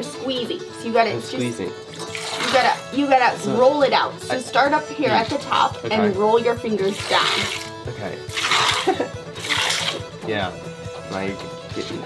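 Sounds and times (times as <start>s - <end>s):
milk squirting from cow's teat: 1.9s - 2.9s, 6.9s - 10.2s.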